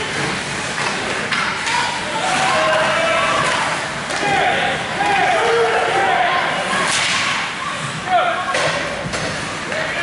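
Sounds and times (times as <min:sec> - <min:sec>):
hockey sticks and puck cracking: 0:00.1 - 0:04.4, 0:06.7 - 0:07.5
voices shouting: 0:01.7 - 0:08.5.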